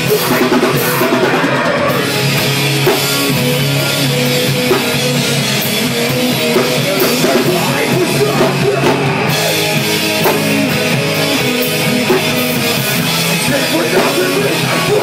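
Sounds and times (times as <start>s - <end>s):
drum kit: 0.0s - 15.0s
electric guitars: 0.0s - 15.0s.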